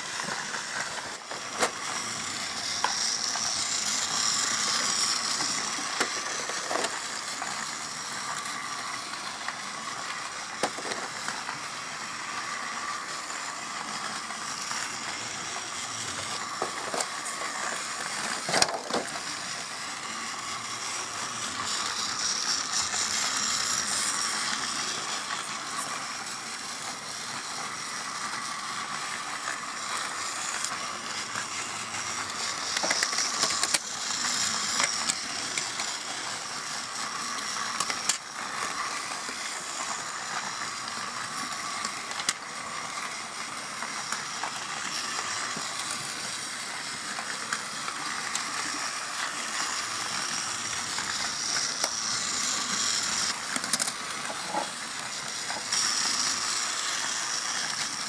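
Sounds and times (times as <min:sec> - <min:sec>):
plastic toy pieces clicking: 0:53.1 - 0:54.0.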